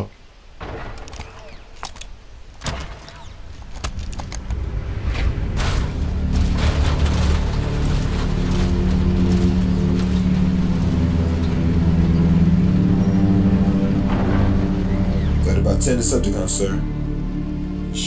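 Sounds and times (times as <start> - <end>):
dramatic film score: 0.0 - 18.0.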